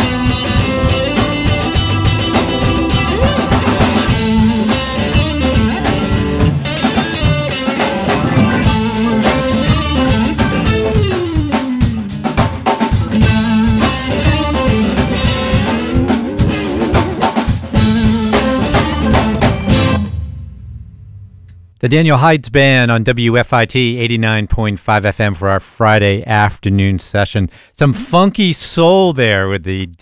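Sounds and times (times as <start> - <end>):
live funk soul band playing: 0.0 - 20.0.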